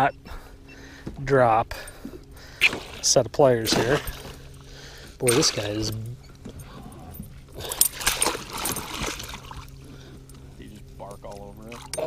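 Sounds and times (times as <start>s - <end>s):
faint low hum: 0.0s - 12.0s
fish splashing in a net: 7.8s - 9.7s.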